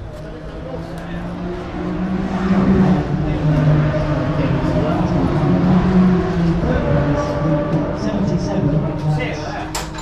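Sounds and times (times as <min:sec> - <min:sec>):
racing car engine running: 0:00.0 - 0:09.9
people talking: 0:00.0 - 0:10.0.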